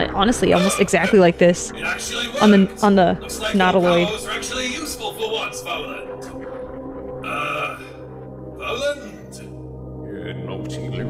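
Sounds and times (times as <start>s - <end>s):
low musical drone: 0.0s - 11.0s
man groaning: 1.8s - 2.7s, 7.2s - 8.0s, 8.6s - 9.4s.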